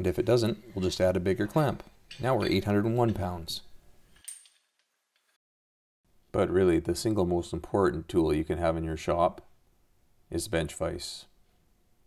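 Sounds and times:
metallic clamp clink: 0.7s - 3.4s, 4.1s - 5.3s.

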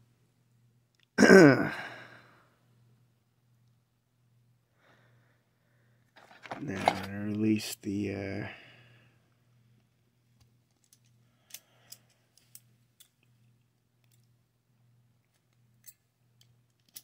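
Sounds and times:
low steady hum: 0.0s - 17.0s
locking pliers clicking: 15.3s - 17.0s.

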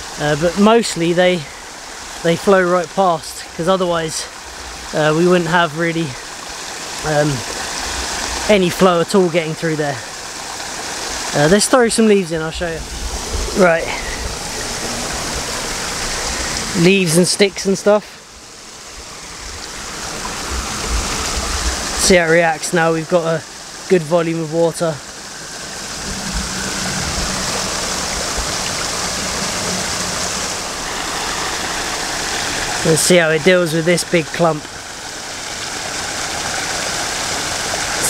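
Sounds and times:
stream water pouring: 0.0s - 38.0s.

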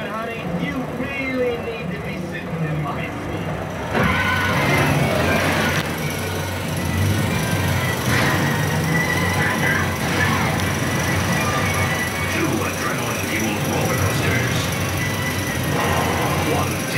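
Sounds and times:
voices: 0.0s - 16.9s
movie trailer music: 13.1s - 16.9s.

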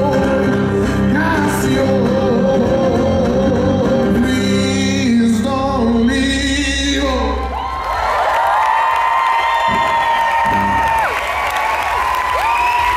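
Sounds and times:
person singing: 0.0s - 7.6s
crowd cheering and whooping: 7.2s - 12.9s.

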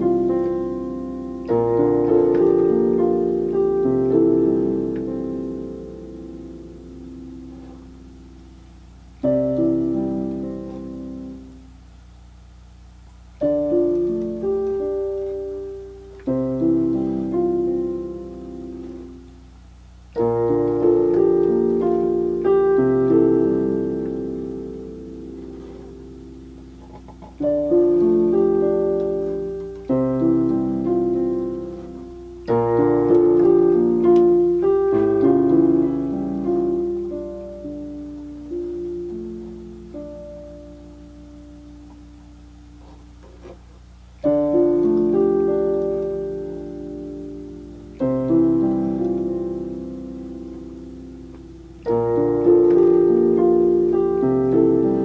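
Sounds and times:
slow gentle piano melody: 0.0s - 55.0s.

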